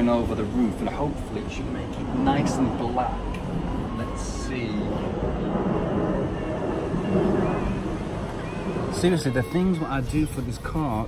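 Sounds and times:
faint voices: 0.0 - 11.0
traffic engine rumble: 0.0 - 11.0.

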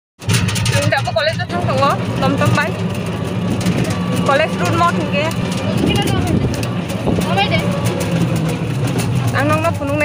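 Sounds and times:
vehicle engine running: 0.2 - 10.0
people talking: 0.7 - 2.8, 3.7 - 10.0.

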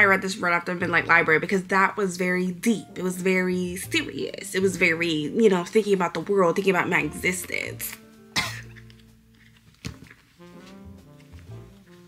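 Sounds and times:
background music: 0.0 - 12.0
woman coughing: 8.4 - 8.8.

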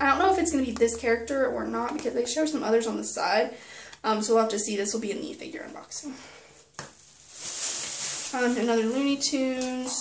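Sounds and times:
plastic crinkling: 6.6 - 10.0.

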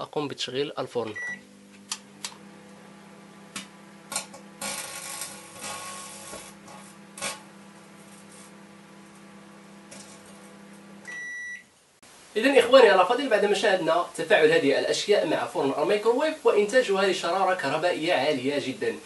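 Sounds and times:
microwave beep: 1.1 - 1.5, 11.0 - 11.7
microwave oven humming: 1.1 - 11.6.

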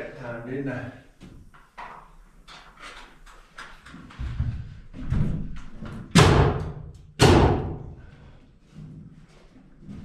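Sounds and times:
nail gun firing: 6.1 - 7.8.

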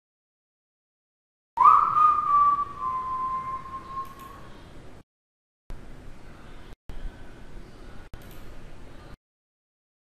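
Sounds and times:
sliding whistled note: 1.6 - 4.5.

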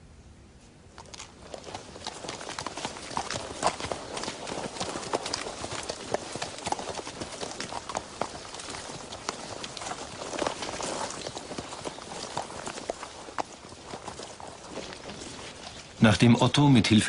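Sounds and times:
horse hooves clopping: 0.9 - 17.0.

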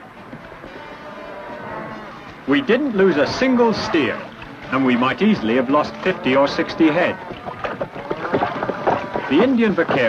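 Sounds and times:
water splashing and sloshing: 0.1 - 10.0
irregular knocks: 6.4 - 10.0.

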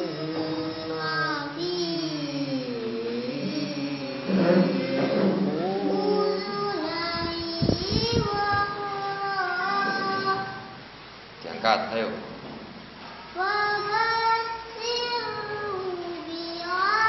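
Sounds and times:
girl reciting melodically: 0.0 - 11.1, 13.1 - 17.0.

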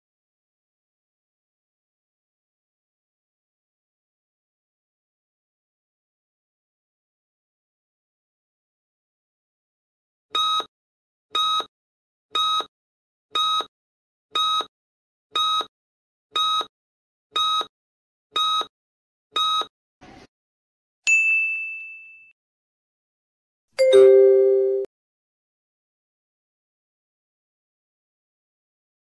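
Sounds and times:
ding: 21.1 - 22.4, 23.8 - 24.9.

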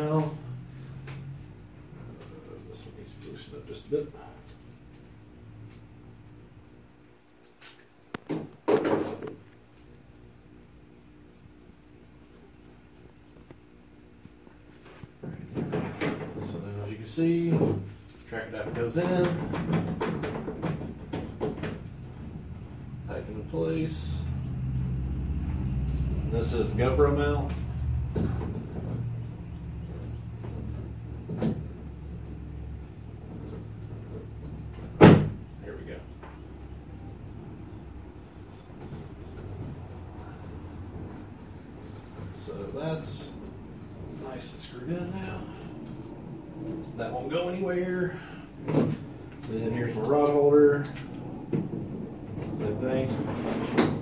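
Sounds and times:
steady low hum: 0.0 - 54.0
adapter scraping along rail: 49.9 - 54.0.

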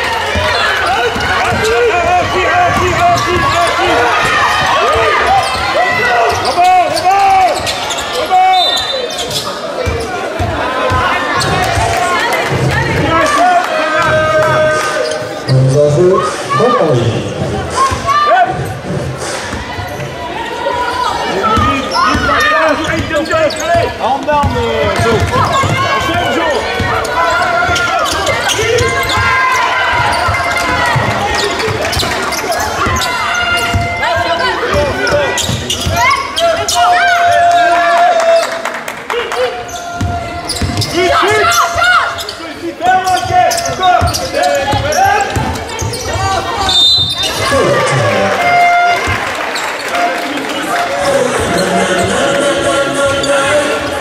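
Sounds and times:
crowd voices calling out: 0.0 - 54.0
ball bouncing on hardwood court: 32.8 - 34.0, 44.0 - 46.2.

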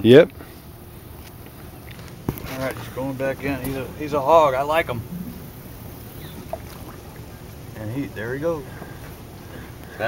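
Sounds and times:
low outdoor background: 0.0 - 10.0
fish splashing into water: 5.0 - 7.8.

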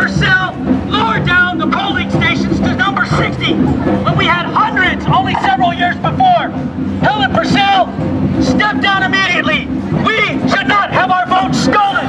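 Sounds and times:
crowd chatter: 0.0 - 12.0
voice through a megaphone: 0.0 - 12.0.

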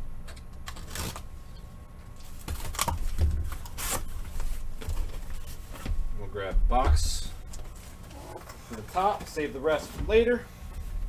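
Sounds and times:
tape and cardboard tearing: 0.3 - 1.4, 2.2 - 5.2
dull thumps of boxes moved: 2.5 - 11.0.

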